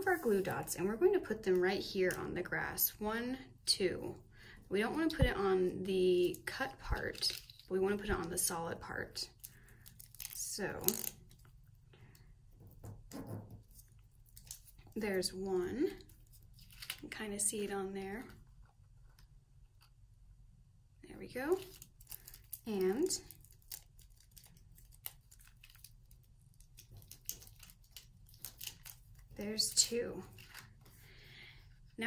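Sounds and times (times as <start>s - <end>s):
paper rustle: 16.1s - 17.0s, 21.6s - 31.1s.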